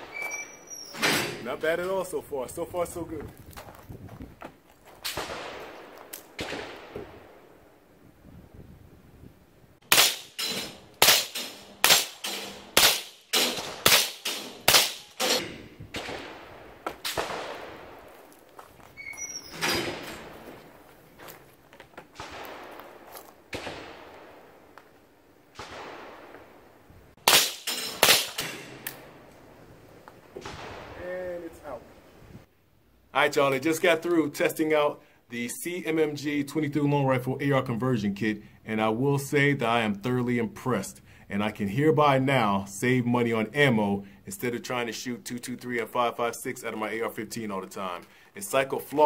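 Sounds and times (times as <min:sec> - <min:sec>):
gunshots: 0:05.0 - 0:07.5, 0:09.8 - 0:18.4, 0:22.1 - 0:24.6, 0:25.5 - 0:26.6, 0:27.2 - 0:29.2, 0:30.4 - 0:31.5.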